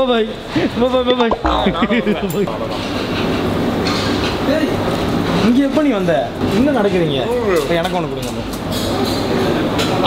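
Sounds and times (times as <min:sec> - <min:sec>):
restaurant kitchen din: 0:03.4 - 0:10.0.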